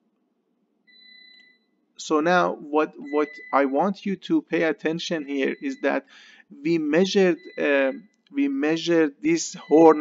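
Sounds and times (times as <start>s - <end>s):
high electronic tone: 0.9s - 6.0s, 6.6s - 10.0s.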